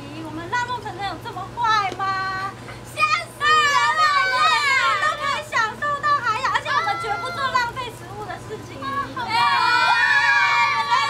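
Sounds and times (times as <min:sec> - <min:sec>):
steady low hum: 0:00.0 - 0:11.0
women talking excitedly: 0:00.0 - 0:11.0.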